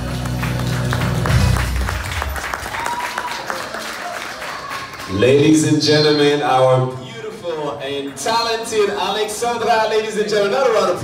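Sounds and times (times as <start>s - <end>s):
audience applauding: 0.0s - 5.8s, 7.2s - 11.0s.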